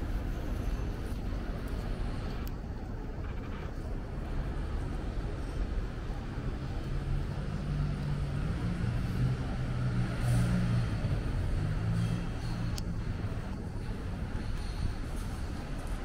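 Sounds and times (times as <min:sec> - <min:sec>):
city traffic rumble: 0:00.0 - 0:16.0
vehicle engine running close by: 0:04.2 - 0:16.0.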